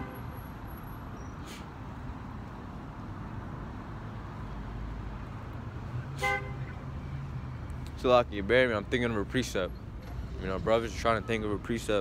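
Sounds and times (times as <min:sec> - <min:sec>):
car horn toot: 0:00.0 - 0:00.2, 0:06.2 - 0:06.8
street traffic rumble: 0:00.0 - 0:12.0.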